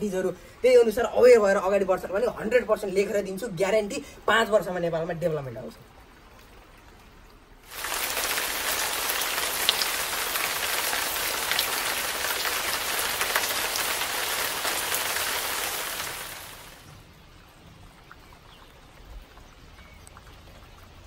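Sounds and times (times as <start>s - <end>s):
rain on a flat roof: 0.0s - 21.0s.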